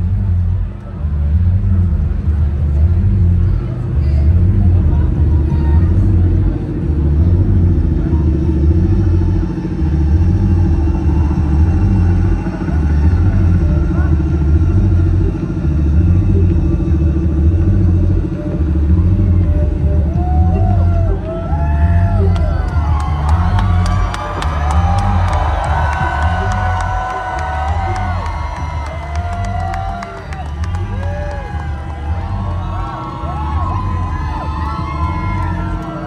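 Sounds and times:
bass-heavy drone from speakers: 0:00.0 - 0:36.0
crowd chatter: 0:00.0 - 0:36.0.

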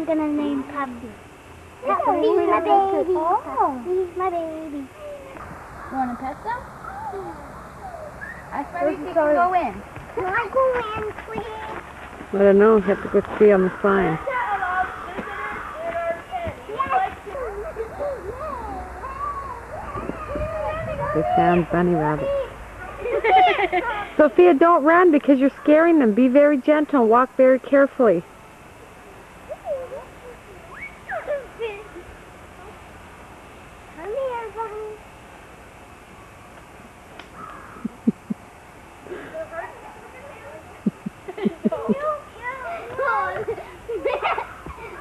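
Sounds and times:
distant voices talking: 0:00.0 - 0:33.0
low laughs: 0:37.7 - 0:38.5, 0:40.8 - 0:42.0.

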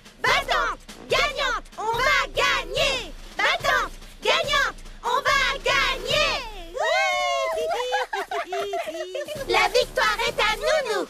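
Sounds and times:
cartoon girls cheering in chorus: 0:06.7 - 0:08.2.

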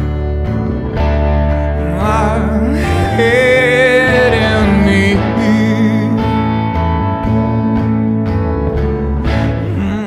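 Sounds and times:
bass line: 0:00.0 - 0:10.0
guitar chords: 0:00.0 - 0:10.0.

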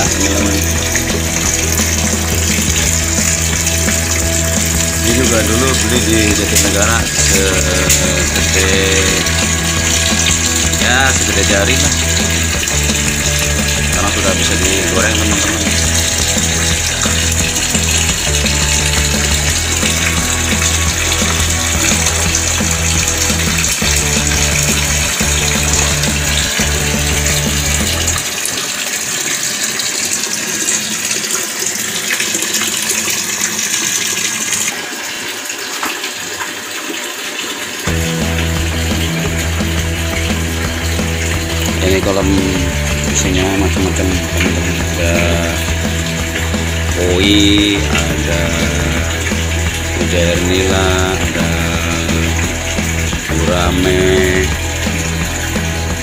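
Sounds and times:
music with stepping bass line: 0:00.0 - 0:28.3, 0:37.9 - 0:56.0
water pouring into pond: 0:00.0 - 0:56.0.

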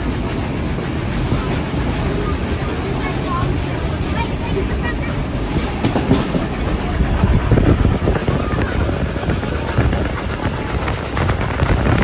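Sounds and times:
train carriage rumble: 0:00.0 - 0:12.0
wheels clicking over rails: 0:00.0 - 0:12.0.

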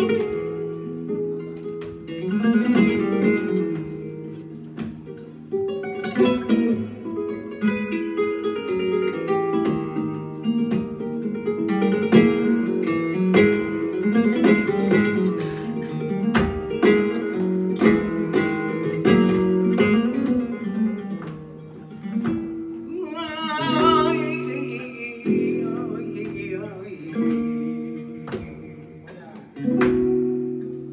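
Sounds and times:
flamenco guitar playing: 0:00.0 - 0:30.9
man singing: 0:22.9 - 0:29.7.

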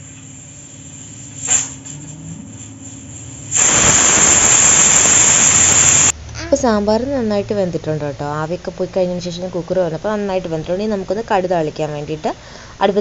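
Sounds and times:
loud steady hiss: 0:00.0 - 0:06.2.

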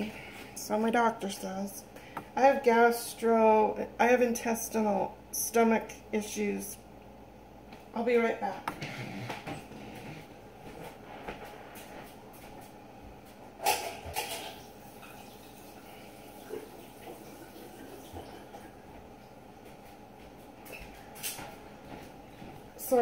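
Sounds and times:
kitchen background noise: 0:07.7 - 0:23.0.

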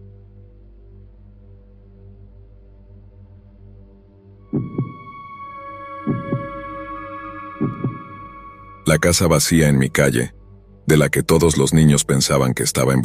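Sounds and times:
low drone: 0:00.0 - 0:11.8
heartbeat thumps: 0:04.5 - 0:05.2, 0:05.9 - 0:08.3
held chord of steady tones: 0:04.8 - 0:10.7.

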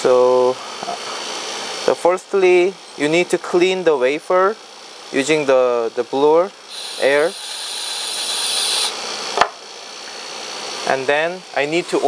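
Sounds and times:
compressed air blow gun hissing: 0:06.7 - 0:09.0.

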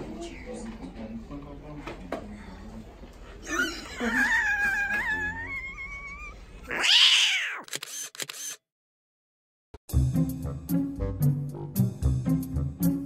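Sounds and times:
laughter: 0:03.4 - 0:06.4
person squealing: 0:04.1 - 0:07.7
sharp clicks: 0:07.6 - 0:08.6.

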